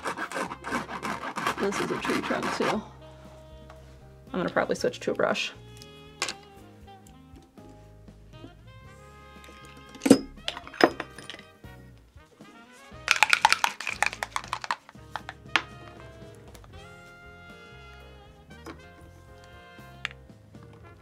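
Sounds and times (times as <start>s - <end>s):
instrumental background music: 0.0s - 21.0s.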